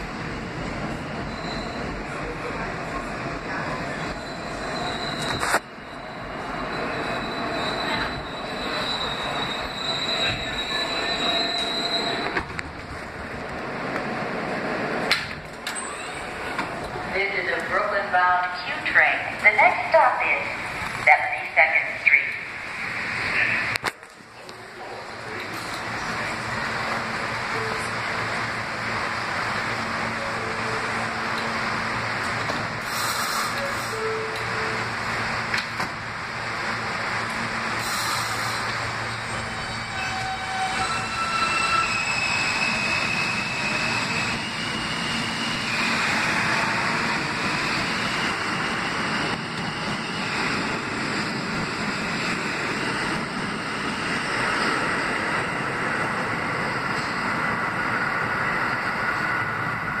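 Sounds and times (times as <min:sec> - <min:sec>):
rumble of train wheels: 0:00.0 - 1:00.0.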